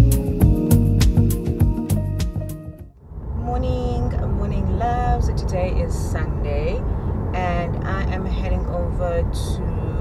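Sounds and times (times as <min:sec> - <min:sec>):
car engine rumble: 0:00.6 - 0:10.0
road noise inside car: 0:03.0 - 0:10.0
woman speaking: 0:03.4 - 0:10.0.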